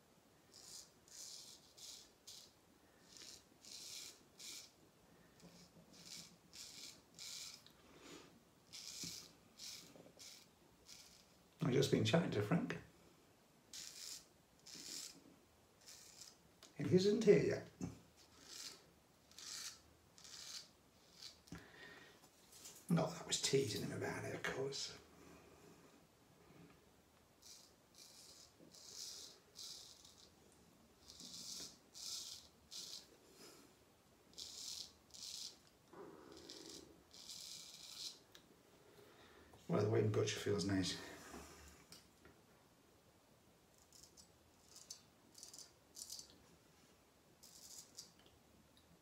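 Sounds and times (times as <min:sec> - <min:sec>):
straight razor scraping stubble: 0:00.5 - 0:04.7, 0:05.4 - 0:07.7, 0:08.7 - 0:11.4, 0:13.7 - 0:15.2, 0:15.8 - 0:17.4, 0:18.2 - 0:21.6, 0:27.4 - 0:30.4, 0:31.0 - 0:33.1, 0:36.3 - 0:38.4, 0:43.8 - 0:46.3, 0:47.4 - 0:48.2.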